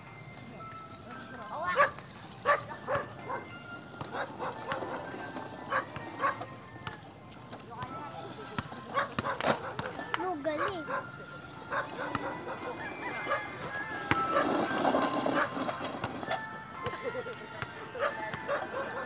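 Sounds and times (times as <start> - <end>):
dog barking: 1.8 - 3.5, 4.1 - 5.0, 5.7 - 6.4, 8.9 - 10.0, 10.6 - 13.4, 18.0 - 19.0.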